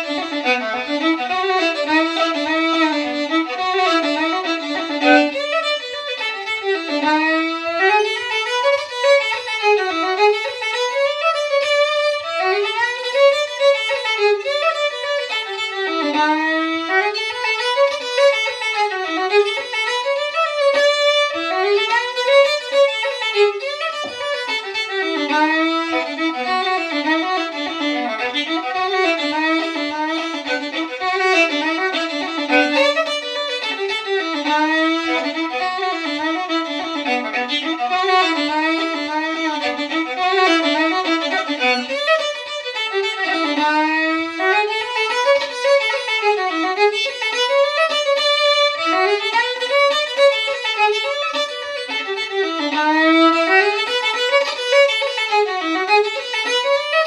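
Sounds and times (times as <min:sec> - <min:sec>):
fiddle playing folk tune: 0:00.0 - 0:57.0.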